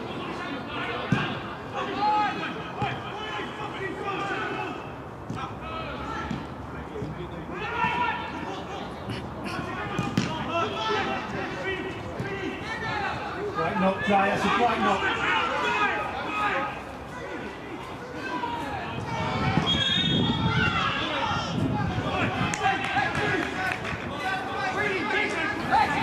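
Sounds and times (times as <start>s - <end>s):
players shouting: 0.0s - 26.0s.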